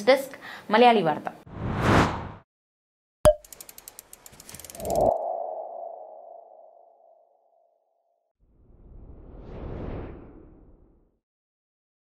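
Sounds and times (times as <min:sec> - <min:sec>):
whoosh: 0:01.5 - 0:02.4, 0:08.6 - 0:11.1
quick run of ticks: 0:03.4 - 0:05.1.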